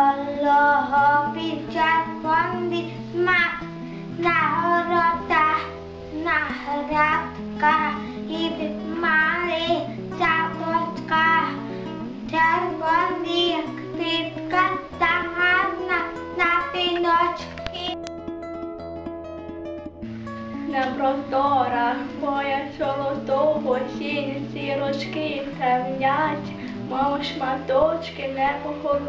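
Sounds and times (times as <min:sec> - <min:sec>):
child singing: 0:00.0 - 0:18.0, 0:20.7 - 0:29.0
instrumental backing music: 0:00.0 - 0:29.0.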